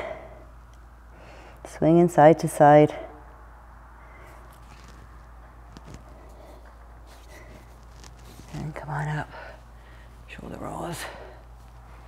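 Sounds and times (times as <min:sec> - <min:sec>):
steady low hum: 0:00.0 - 0:12.0
soft ticks and rustles: 0:04.3 - 0:09.3.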